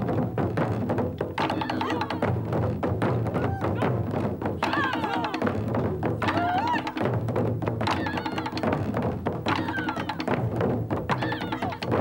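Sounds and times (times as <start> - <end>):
taiko drums playing fast rhythm: 0.0 - 12.0.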